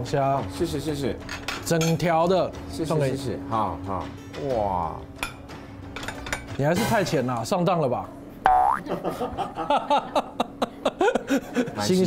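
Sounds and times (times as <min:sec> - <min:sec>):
cartoon boing sound effect: 0:08.5 - 0:08.9.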